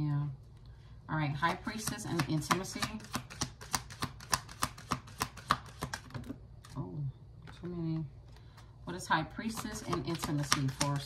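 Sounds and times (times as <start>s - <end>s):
cards shuffling: 1.5s - 6.8s, 9.6s - 11.0s.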